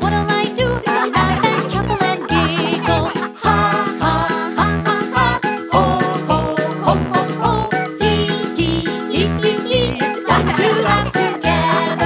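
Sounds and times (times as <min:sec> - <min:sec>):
bouncy bass line: 0:00.0 - 0:12.0
cartoon children singing: 0:00.0 - 0:12.0
upbeat children's song: 0:00.0 - 0:12.0
cartoon children laughing: 0:00.8 - 0:05.4, 0:09.9 - 0:12.0.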